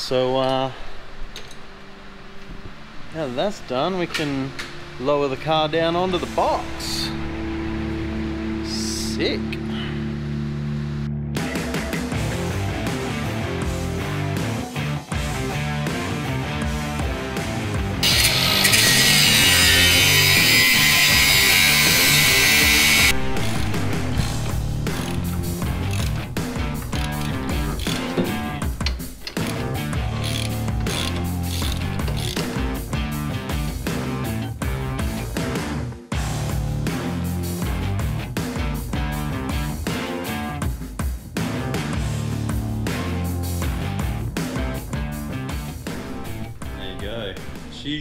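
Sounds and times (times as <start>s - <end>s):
rock music: 4.1s - 48.0s
socket ratchet clicking: 18.0s - 32.6s.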